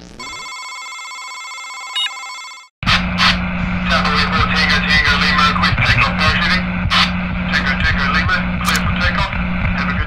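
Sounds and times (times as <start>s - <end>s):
constant hum: 2.8s - 10.0s.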